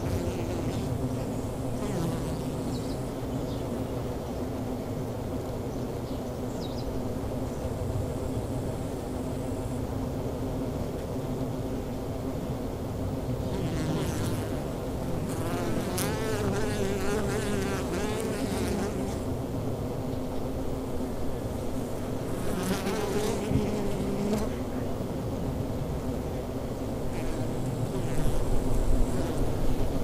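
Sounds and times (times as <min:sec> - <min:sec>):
bee buzzing close by: 0:00.0 - 0:03.4, 0:13.4 - 0:19.4, 0:20.5 - 0:24.9, 0:27.0 - 0:30.0
honeybees humming: 0:00.0 - 0:04.2, 0:13.4 - 0:19.3, 0:20.5 - 0:24.9.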